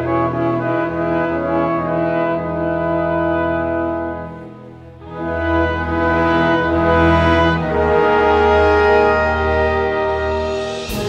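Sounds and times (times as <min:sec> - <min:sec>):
brass and orchestra chords: 0:00.0 - 0:11.0.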